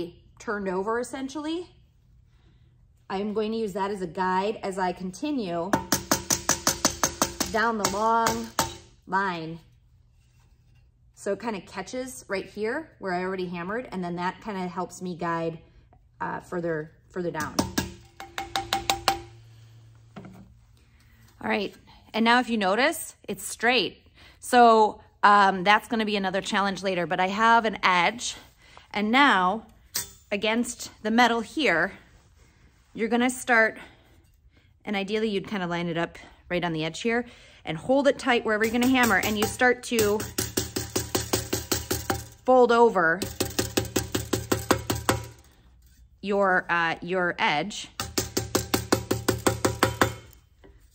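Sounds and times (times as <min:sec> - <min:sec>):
mallet striking copper on metal: 0:05.7 - 0:09.0, 0:17.4 - 0:19.4, 0:29.9 - 0:30.2, 0:38.6 - 0:42.5, 0:43.2 - 0:46.0, 0:48.0 - 0:50.8.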